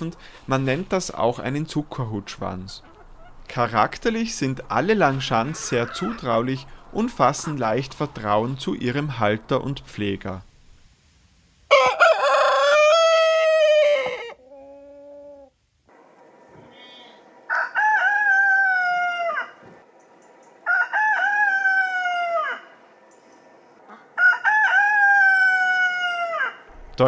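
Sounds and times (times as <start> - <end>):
roosters crowing: 5.0 - 8.1, 11.7 - 15.5, 17.4 - 19.8, 20.6 - 23.0, 23.9 - 26.7.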